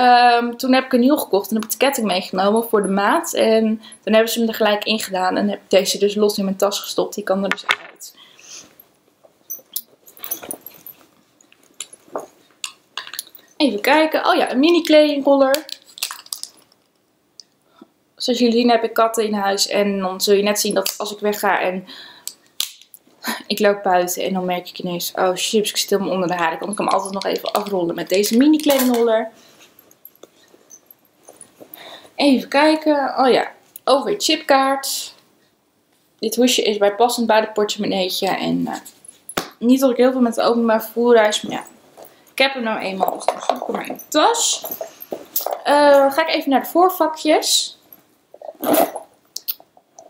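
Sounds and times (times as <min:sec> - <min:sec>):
rummaging in a handbag: 0:09.5 - 0:12.4, 0:42.8 - 0:46.3, 0:47.9 - 0:49.1.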